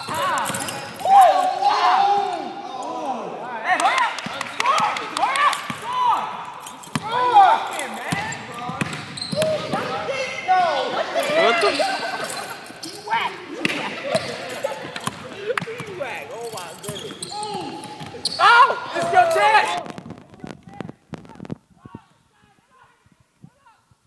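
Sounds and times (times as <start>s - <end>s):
people talking and calling out: 0.0s - 23.9s
basketball bouncing: 6.8s - 7.2s, 8.0s - 10.0s, 16.6s - 18.4s.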